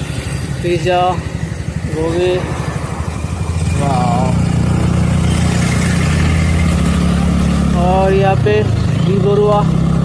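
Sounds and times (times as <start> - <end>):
road and wind noise: 0.0 - 10.0
vehicle engine droning: 0.0 - 10.0.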